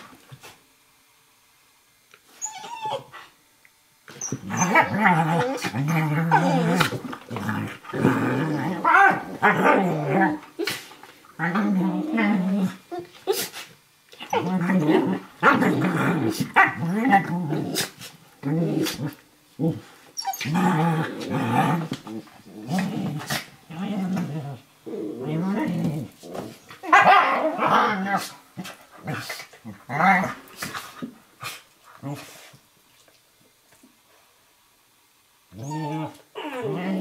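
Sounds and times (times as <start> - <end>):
dogs growling in play: 4.2 - 13.5, 14.1 - 31.2, 31.9 - 32.6, 35.5 - 37.0.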